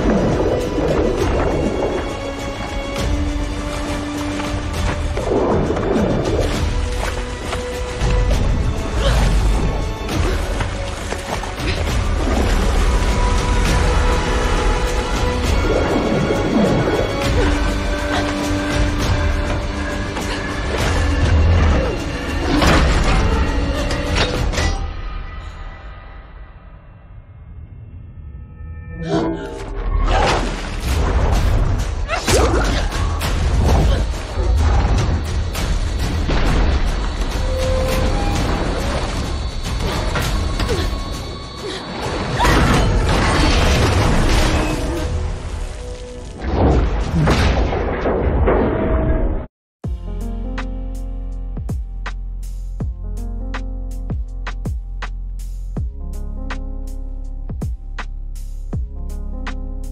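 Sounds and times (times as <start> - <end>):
orchestral film score: 0.0 - 59.9.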